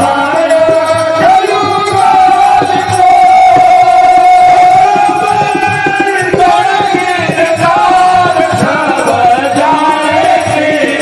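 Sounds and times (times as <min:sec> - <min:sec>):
drum strokes: 0:00.0 - 0:11.0.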